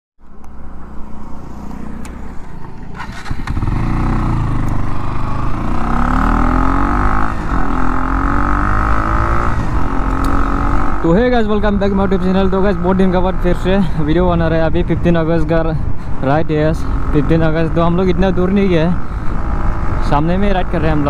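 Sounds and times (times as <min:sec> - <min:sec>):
motorcycle engine accelerating: 0:00.6 - 0:13.4.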